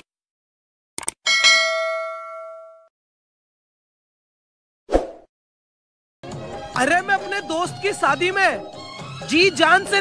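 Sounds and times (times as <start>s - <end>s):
bright bell ding: 1.3s - 2.9s.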